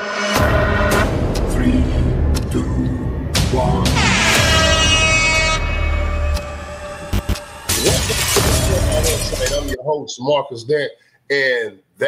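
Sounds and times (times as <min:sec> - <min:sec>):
cinematic music with heavy bass: 0:00.0 - 0:09.8.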